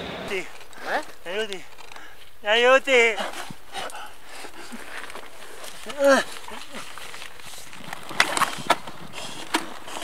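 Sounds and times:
rustles: 0.0s - 10.0s.

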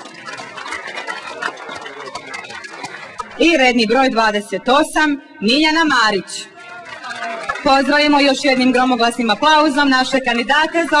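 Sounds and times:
crowd applauding: 0.0s - 3.8s, 6.4s - 11.0s.

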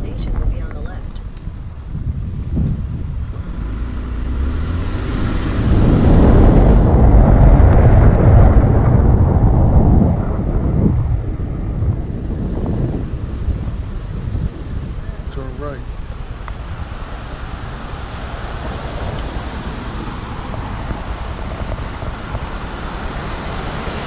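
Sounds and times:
moving car rumble: 0.0s - 24.0s
wind rushing over microphone: 0.0s - 24.0s.

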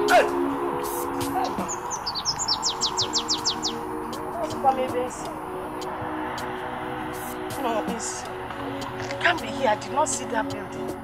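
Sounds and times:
bird chirping: 0.0s - 5.4s.

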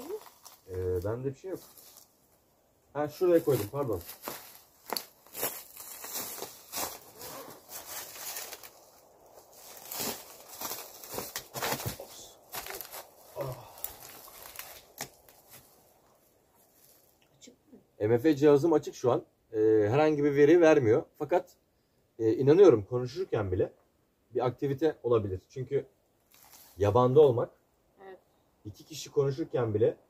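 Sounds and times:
footsteps crunching on pine needles: 0.0s - 2.4s, 3.2s - 17.2s, 26.3s - 26.8s.

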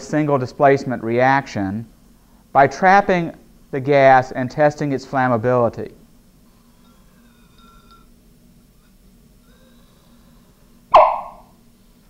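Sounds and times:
faint low hum: 0.0s - 12.0s
hydrogen pop with ringing tail: 10.9s - 11.5s.

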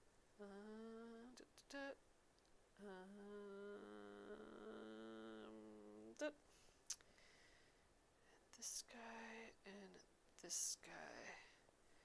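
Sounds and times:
woman humming softly: 0.4s - 2.0s, 2.8s - 6.4s.

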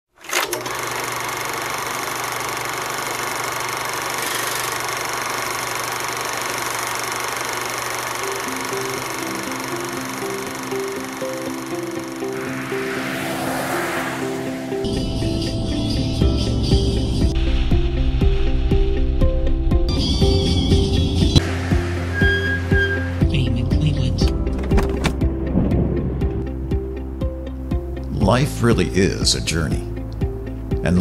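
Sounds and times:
film projector whirring clatter: 0.2s - 11.6s
swell of noise: 11.9s - 15.8s.

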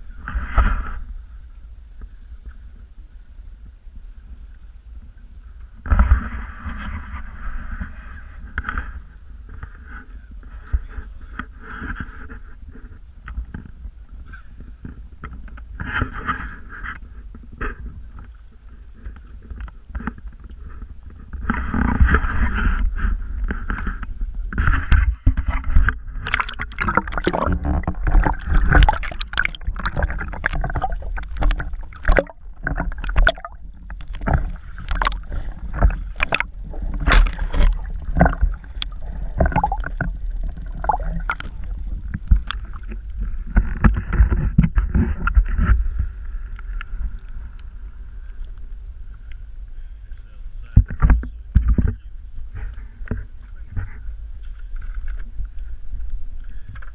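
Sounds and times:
wind rumble on microphone: 0.0s - 56.9s
water sloshing against boat hull: 5.8s - 49.3s
sharp splashes: 26.2s - 41.6s.

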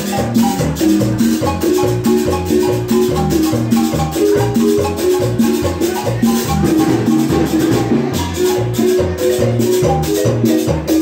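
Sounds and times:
dance band playing: 0.0s - 11.0s
marimba: 0.0s - 11.0s.

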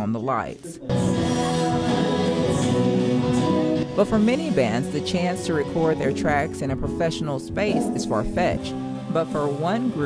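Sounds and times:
singers holding notes in harmony: 0.8s - 5.1s.

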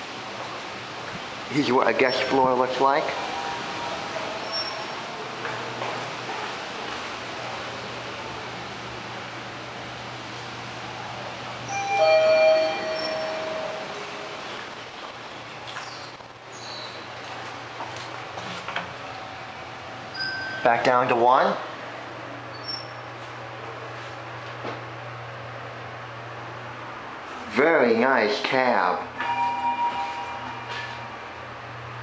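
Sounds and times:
steady background hiss: 0.0s - 32.0s
elevator two-tone arrival chime: 2.0s - 5.0s, 11.7s - 14.5s, 20.1s - 21.1s, 29.1s - 31.6s.

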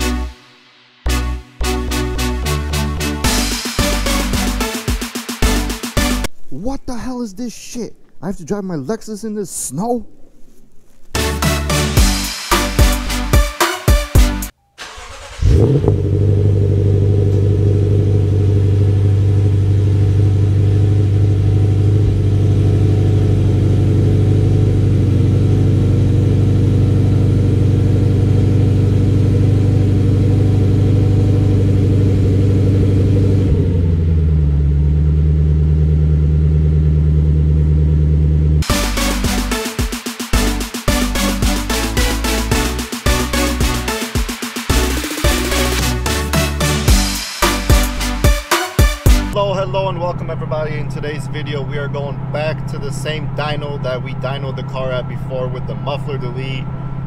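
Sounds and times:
music: 0.0s - 6.3s, 11.2s - 14.6s, 38.6s - 49.4s
car engine starting and idling: 14.3s - 48.4s, 49.1s - 57.0s.

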